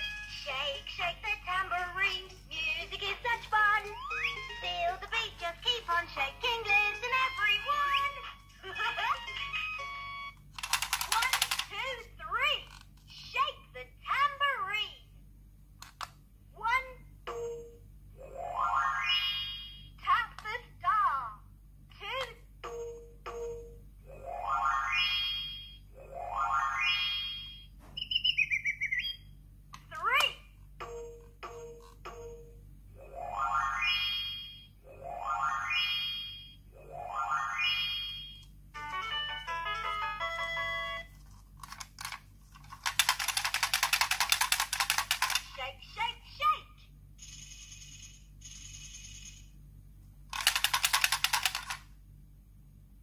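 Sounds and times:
electronic toy sounds: 2.8 - 11.7
chirping warble of beeps: 27.4 - 29.3.

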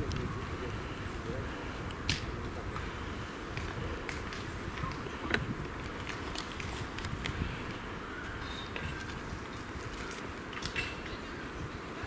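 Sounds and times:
steady low rumble: 0.0 - 10.5
brush rustling: 0.0 - 12.0
twigs snapping: 1.9 - 2.3, 3.5 - 7.4, 9.9 - 11.0.

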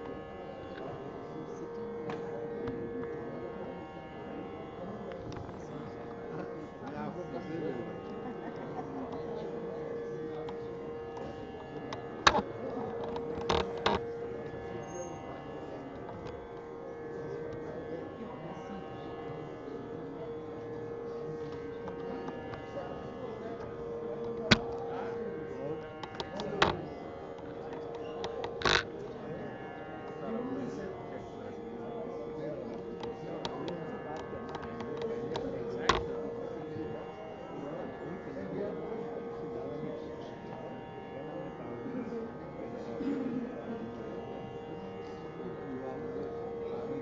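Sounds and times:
low indistinct voices: 0.0 - 47.0
musical drone of held notes: 0.0 - 47.0
steady hum: 0.0 - 47.0.

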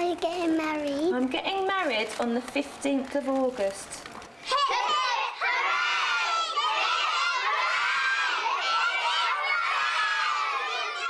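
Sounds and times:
children cheering and shouting: 4.5 - 11.0.

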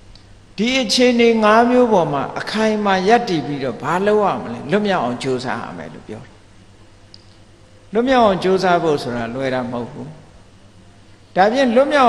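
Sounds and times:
man speaking: 0.6 - 6.4, 7.9 - 10.3, 11.4 - 12.0.

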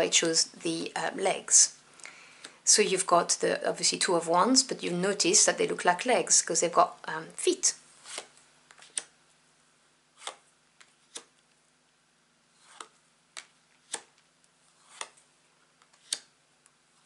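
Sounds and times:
cards snapping off a deck: 12.7 - 14.2.

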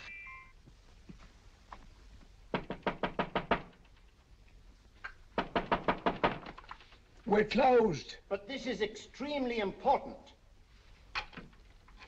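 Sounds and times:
knuckles rapping on glass door: 2.5 - 4.0, 5.4 - 6.6.

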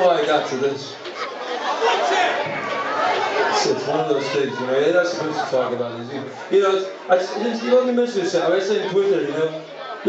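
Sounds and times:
indistinct voices chattering: 0.0 - 10.0.

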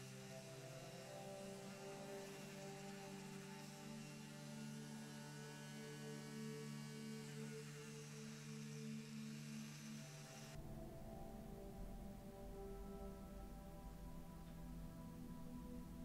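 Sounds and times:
low hum: 0.0 - 16.0
rotary tool motor whine: 0.0 - 16.0.

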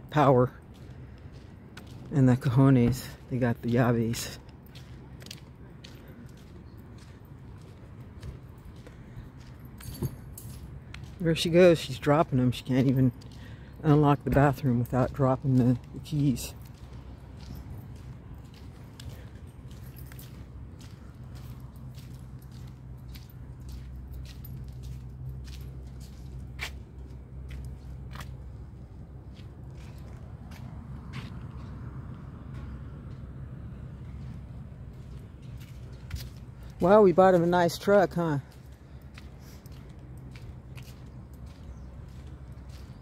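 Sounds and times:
footsteps on pavement: 0.0 - 43.0.

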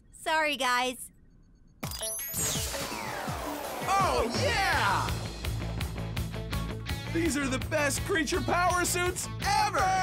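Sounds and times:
background music: 1.8 - 10.0.

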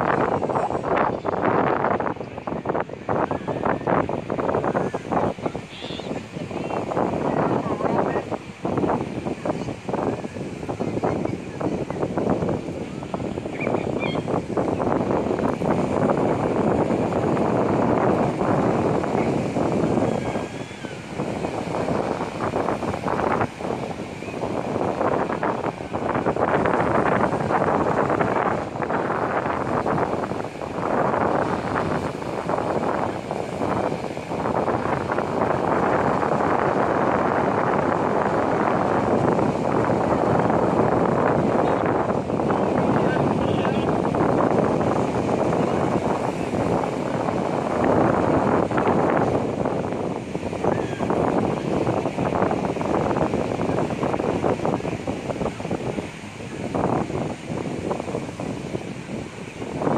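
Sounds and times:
ocean surf breaking: 0.0 - 59.9
wind buffeting microphone: 0.0 - 59.9.

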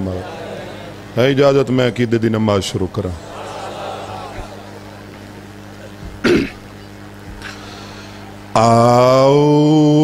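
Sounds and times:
sound system hum: 0.0 - 10.0
man clearing throat: 5.8 - 6.7.

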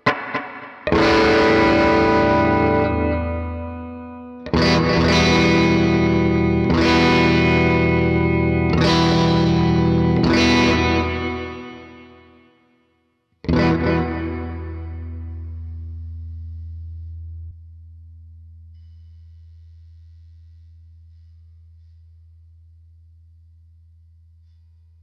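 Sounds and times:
electric guitar strummed chords: 0.0 - 12.5, 13.4 - 17.5.

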